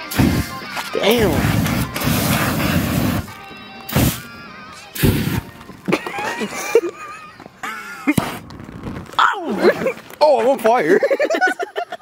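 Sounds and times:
background music: 0:00.0 - 0:08.0
aerosol fireball whooshes: 0:01.2 - 0:03.3
laughter: 0:05.9 - 0:08.2, 0:10.9 - 0:12.0.

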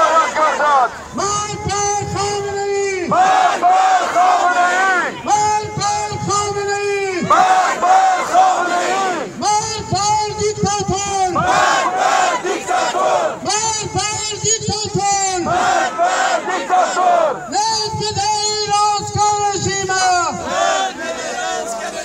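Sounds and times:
crowd chanting: 0:00.0 - 0:01.0, 0:03.1 - 0:05.3, 0:07.2 - 0:09.4, 0:11.4 - 0:13.4, 0:15.4 - 0:17.5, 0:20.3 - 0:22.0
person shouting through a megaphone: 0:00.0 - 0:12.5, 0:13.4 - 0:20.7.

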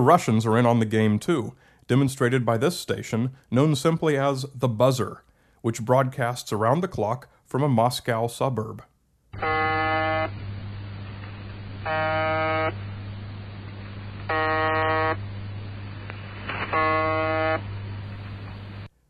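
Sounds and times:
continuous low hum: 0:00.0 - 0:19.0
radio buzz tones: 0:09.4 - 0:18.9.

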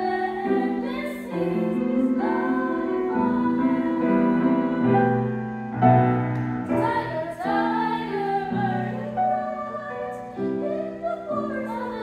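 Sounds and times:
grand piano accompaniment: 0:00.0 - 0:12.0
vocal ensemble singing in harmony: 0:00.0 - 0:12.0.

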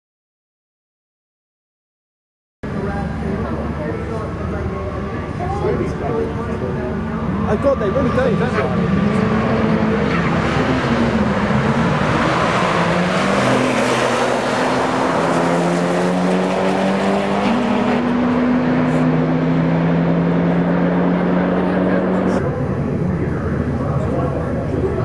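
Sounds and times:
cars accelerating hard: 0:05.7 - 0:25.0.

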